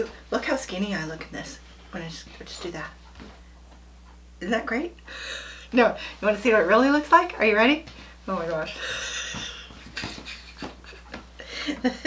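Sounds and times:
woman's stifled breathy laughter: 0:08.8 - 0:12.0.

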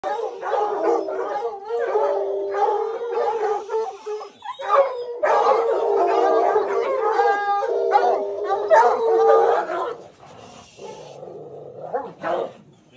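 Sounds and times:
hounds baying and howling: 0:00.0 - 0:12.6.

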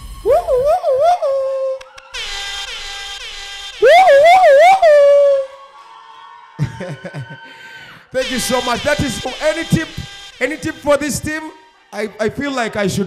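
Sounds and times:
air horn blasts: 0:02.2 - 0:05.0, 0:08.2 - 0:11.9.

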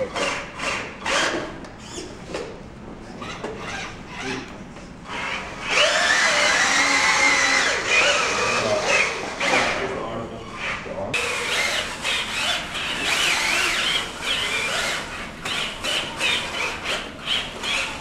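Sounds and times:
robot electric motors whining: 0:00.0 - 0:02.1, 0:03.2 - 0:18.0.

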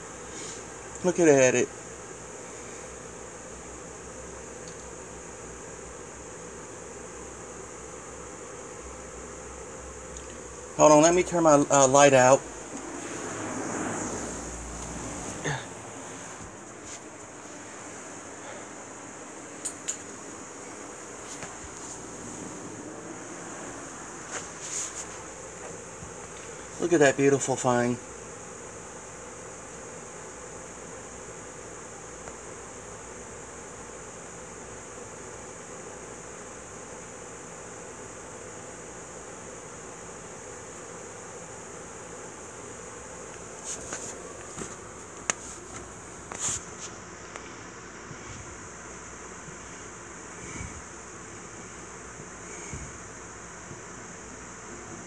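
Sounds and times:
steady hiss: 0:00.0 - 0:55.0.

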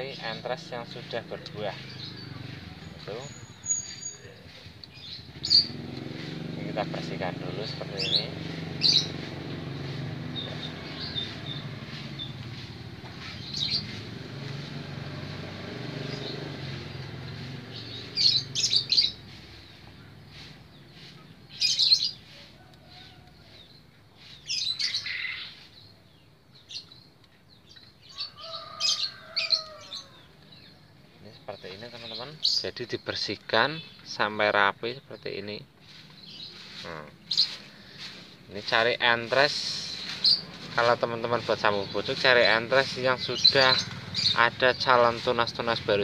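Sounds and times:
small birds chirping: 0:00.0 - 0:46.0.

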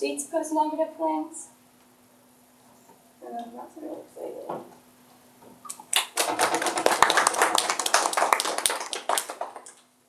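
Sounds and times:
many hands clapping: 0:05.7 - 0:09.9.

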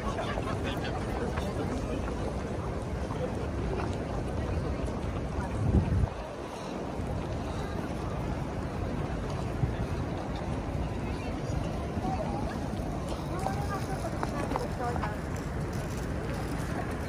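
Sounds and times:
busy city street noise: 0:00.0 - 0:17.0
wind buffeting microphone: 0:00.0 - 0:17.0.

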